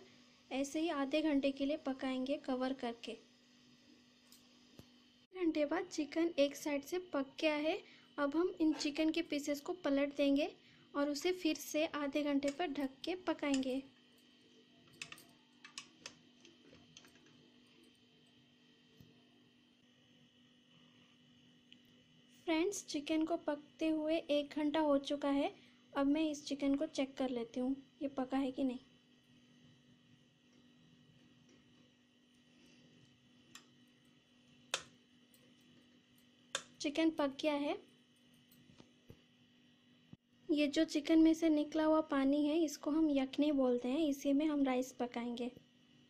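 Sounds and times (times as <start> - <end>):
faint steady hum: 0.0 - 46.0
metal tongs clicking on colander: 14.9 - 16.2.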